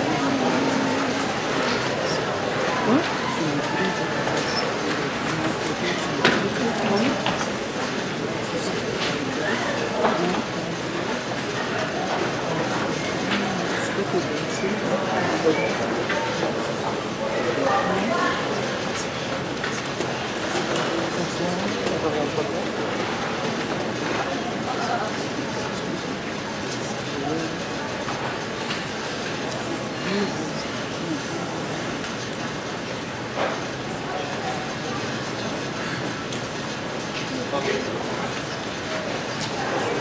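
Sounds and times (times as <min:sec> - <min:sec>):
murmur of voices: 0:00.0 - 0:40.0.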